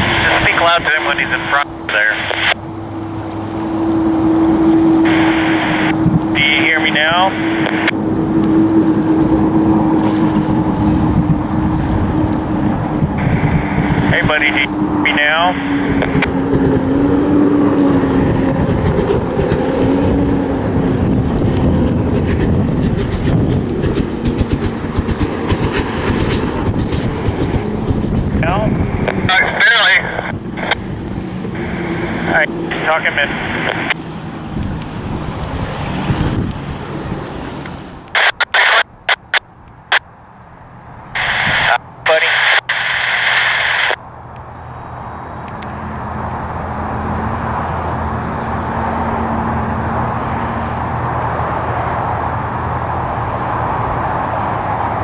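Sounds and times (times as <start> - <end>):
turbine engine rushing with whine: 0.0 - 55.0.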